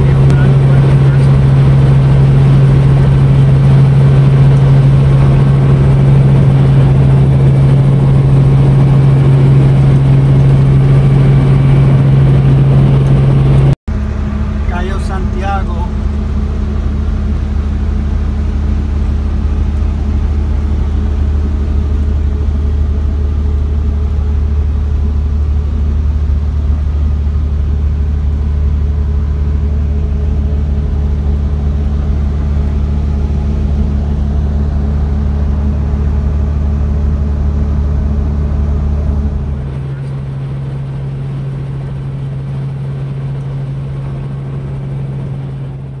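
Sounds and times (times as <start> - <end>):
higher single-pitched hum: 0.0 - 46.0
low motor hum: 0.0 - 46.0.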